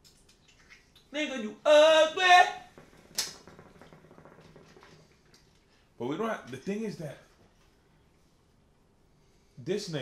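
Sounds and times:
hookah water bubbling: 0.0s - 1.2s, 2.3s - 6.0s.

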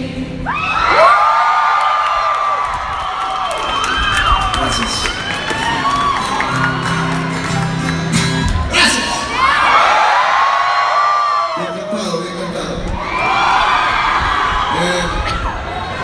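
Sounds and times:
crowd screaming and cheering: 0.3s - 16.0s.

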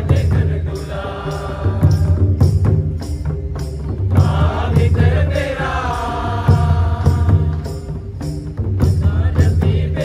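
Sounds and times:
group of voices singing: 0.0s - 2.7s, 4.1s - 8.1s, 8.8s - 10.0s
hand drums beating rhythm: 0.0s - 10.0s.

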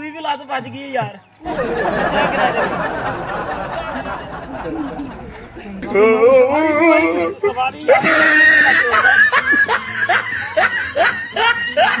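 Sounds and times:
yelping laughter: 1.4s - 12.0s.

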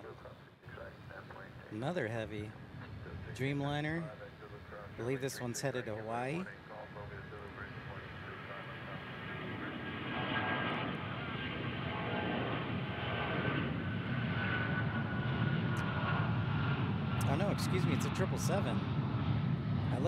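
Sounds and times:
high fan whine: 0.7s - 20.0s
jet engines roaring: 0.7s - 20.0s.

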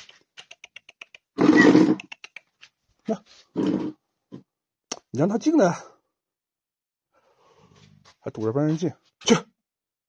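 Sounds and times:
small ticks: 0.0s - 1.4s.

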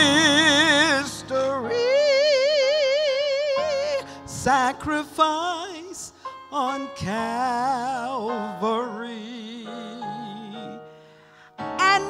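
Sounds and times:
woman singing with vibrato: 0.0s - 4.0s, 11.8s - 12.0s.

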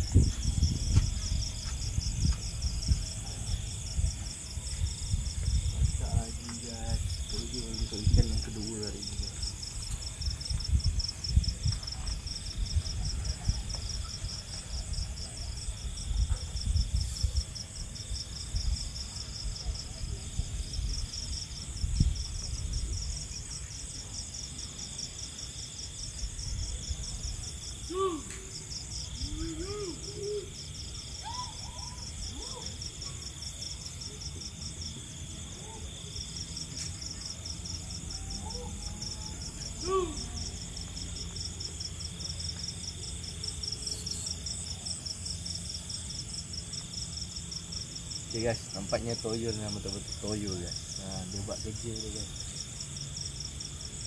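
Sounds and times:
night insects chirring: 0.0s - 54.0s.

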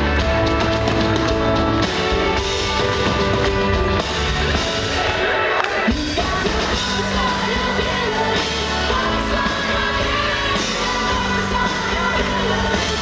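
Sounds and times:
live indie pop band playing: 0.0s - 13.0s.

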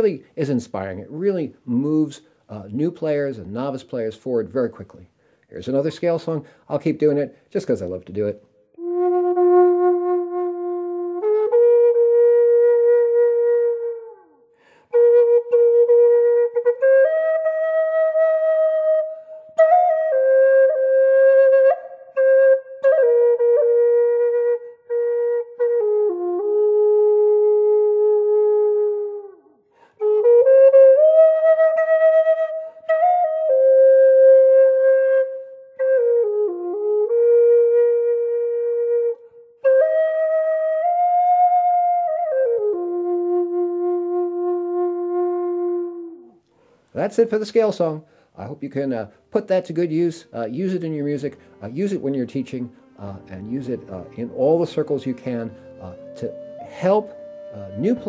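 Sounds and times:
flute playing slow melody: 8.7s - 46.5s, 51.0s - 58.0s.

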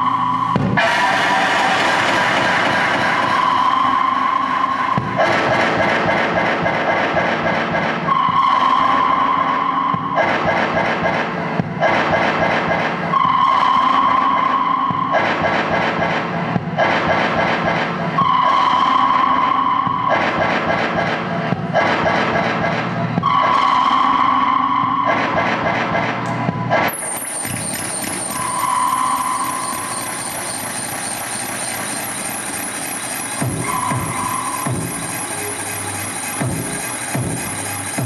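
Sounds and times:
harsh electronic noise music: 0.0s - 38.0s.

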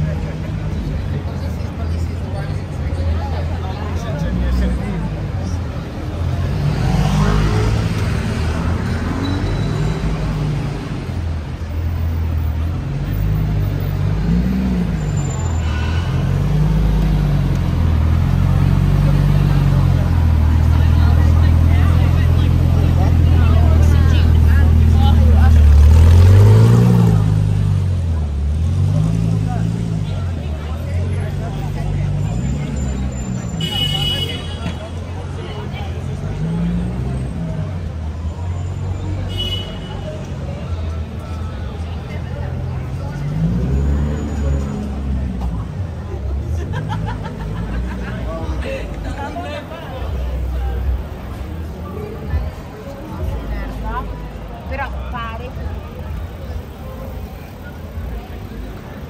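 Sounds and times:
city street noise: 0.0s - 59.0s.

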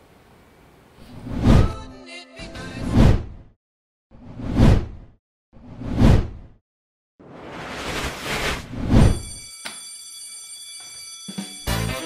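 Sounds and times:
steady high ringing tone: 9.1s - 12.0s.

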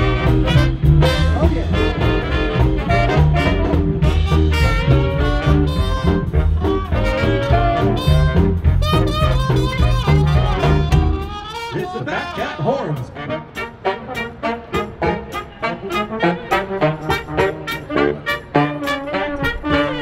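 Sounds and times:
swing band playing: 0.0s - 20.0s.

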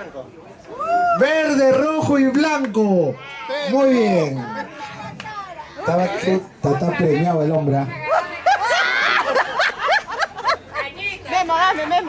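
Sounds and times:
group of people laughing: 8.0s - 11.2s.

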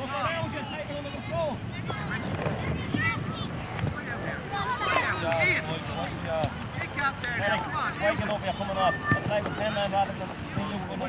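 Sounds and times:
outdoor background noise: 0.0s - 11.0s
people shouting and calling: 0.0s - 11.0s.

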